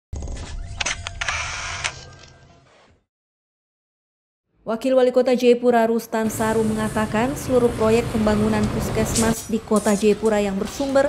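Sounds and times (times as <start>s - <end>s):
camera shutter clicks: 0.8s - 2.3s.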